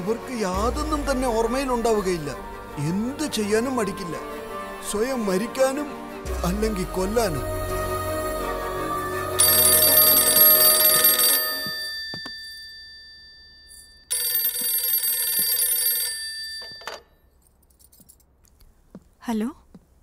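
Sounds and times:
soft background music: 0:00.0 - 0:11.9
old telephone bell ringing: 0:09.4 - 0:17.4.

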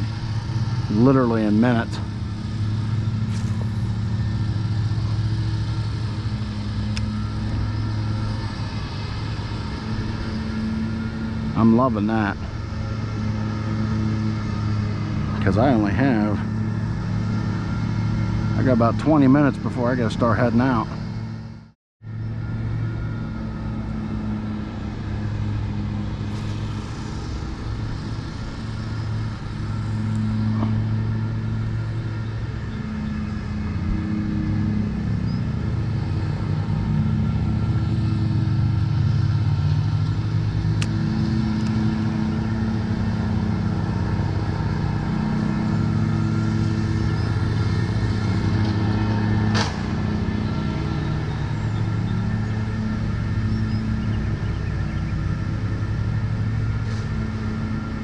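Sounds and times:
lawn mower engine running: 0:00.0 - 0:58.0.

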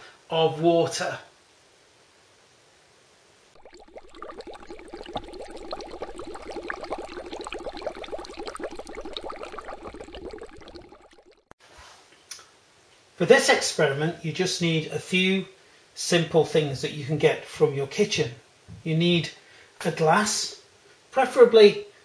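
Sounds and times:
liquid bubbling: 0:03.6 - 0:11.6.

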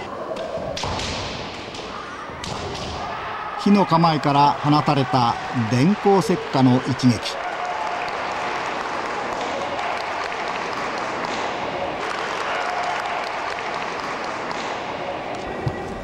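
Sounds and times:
spectators applauding: 0:04.1 - 0:14.7.

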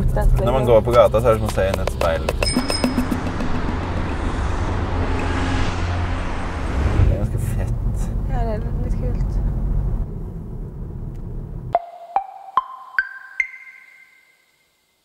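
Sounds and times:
car cabin driving rumble: 0:00.0 - 0:11.8
chime note: 0:02.4 - 0:03.3, 0:11.8 - 0:14.6.

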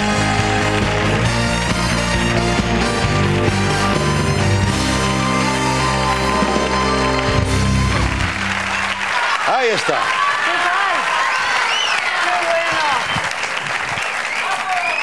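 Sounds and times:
studio band music: 0:00.0 - 0:09.8
audience applause: 0:00.0 - 0:15.0
audience cheering and shouting: 0:02.8 - 0:15.0.

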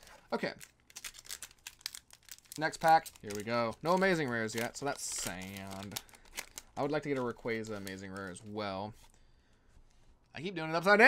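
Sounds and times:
foil wrapper crinkling: 0:00.0 - 0:08.6.

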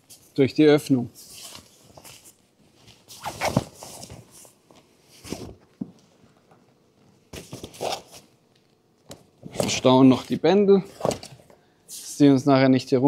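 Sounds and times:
tent fabric rustling and scraping: 0:01.2 - 0:05.5.

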